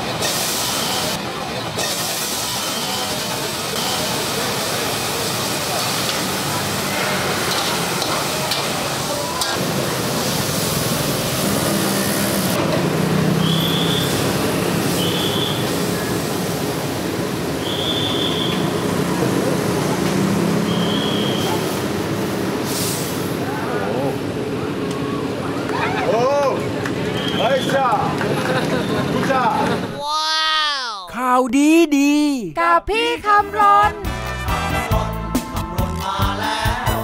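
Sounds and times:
wok burner roaring: 0.0 - 27.3
street traffic: 0.0 - 37.0.

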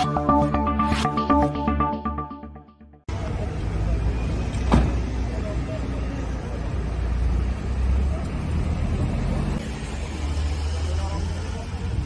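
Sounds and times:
vehicle engines idling: 3.1 - 12.0.

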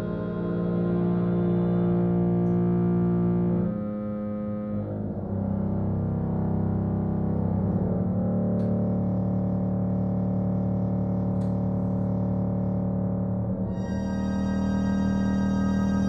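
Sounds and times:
harmonium held chords: 0.0 - 5.0, 12.2 - 16.0.

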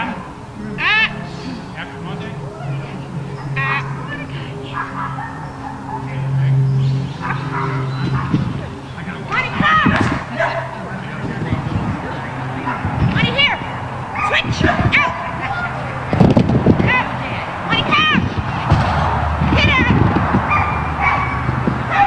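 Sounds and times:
steady low hum: 0.0 - 22.0
dog barking and yipping: 2.5 - 6.5, 7.2 - 8.5, 9.3 - 10.8, 12.7 - 15.8, 20.4 - 22.0.

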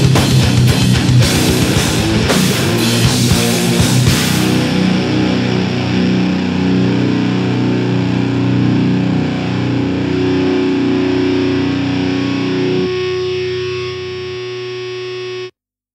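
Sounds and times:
heavy metal band playing: 0.0 - 14.5
ringing guitar chord: 0.0 - 15.5.

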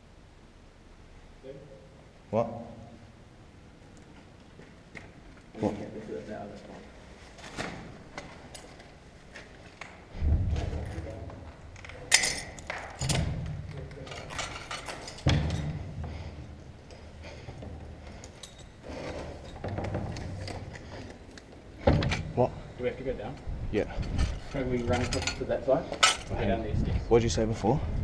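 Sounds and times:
heavy thuds and knocks: 15.2 - 16.4, 21.8 - 22.4.

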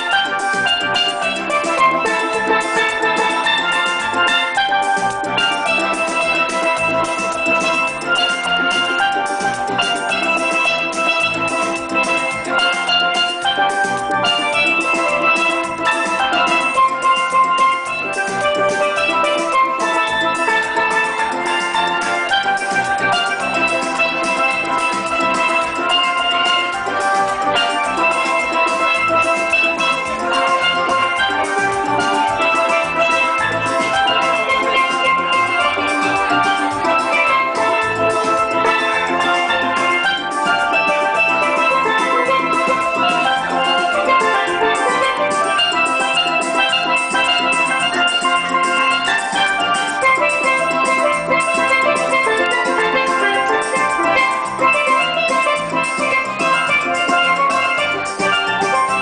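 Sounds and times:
drums beating: 0.0 - 59.0
steelpans playing melody: 0.0 - 59.0.

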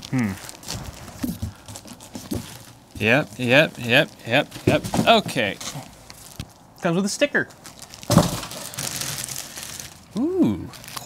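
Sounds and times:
plastic bag crinkling: 0.0 - 6.8, 7.5 - 11.0.

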